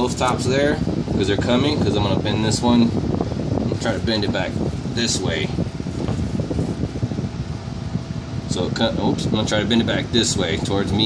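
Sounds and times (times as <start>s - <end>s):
fans whooshing airflow: 0.0s - 11.0s.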